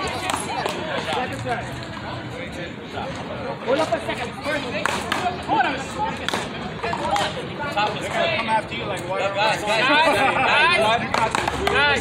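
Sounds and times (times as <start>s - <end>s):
voices talking: 0.0s - 12.0s.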